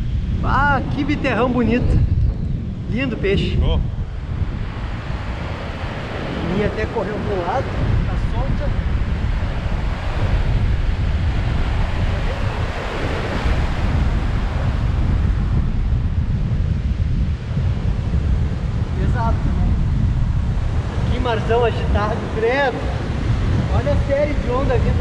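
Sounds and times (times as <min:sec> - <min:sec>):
heavy surf breaking: 0:00.0 - 0:25.0
wind buffeting microphone: 0:00.0 - 0:25.0.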